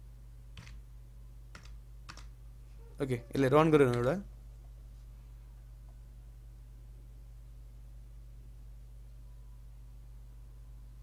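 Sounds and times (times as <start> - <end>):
keyboard keystrokes: 0.6 - 0.8, 1.5 - 2.3.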